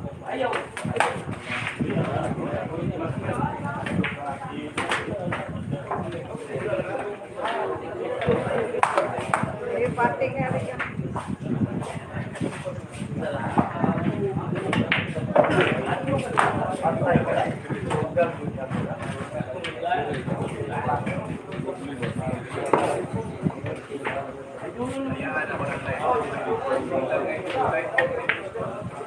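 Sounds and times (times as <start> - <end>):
people chattering: 0.0 - 29.0.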